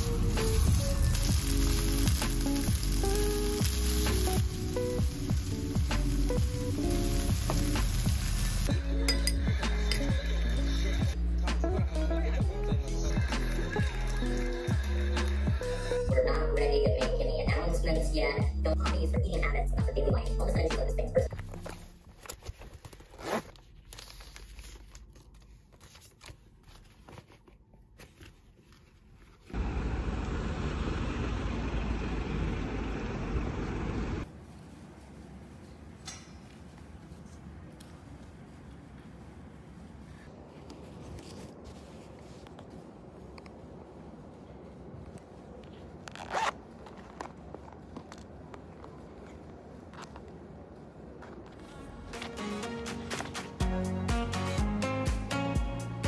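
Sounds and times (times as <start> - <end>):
plastic packet ripping: 0.0 - 6.4
plastic packet crinkling: 0.0 - 8.7
plastic pouch zipper opening: 21.4 - 24.1, 46.0 - 47.4.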